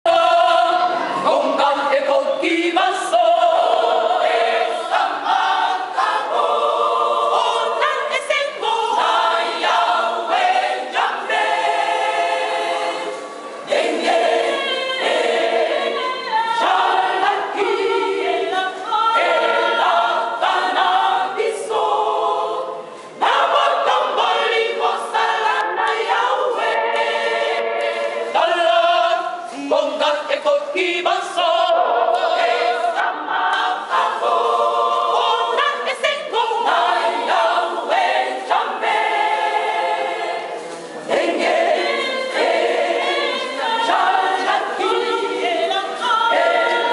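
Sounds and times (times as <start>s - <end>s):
women's choir singing: 0.1s - 46.9s.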